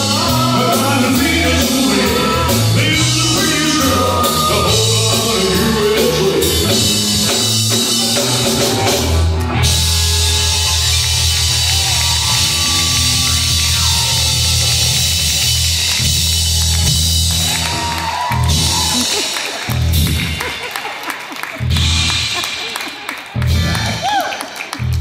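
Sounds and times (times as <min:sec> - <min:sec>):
accented band hits: 0:00.0 - 0:21.0, 0:21.6 - 0:24.2
live rock band playing: 0:00.0 - 0:25.0.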